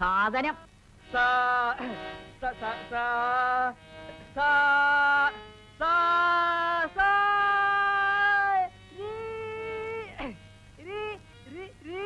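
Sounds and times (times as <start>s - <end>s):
man singing a long note: 1.1s - 12.0s.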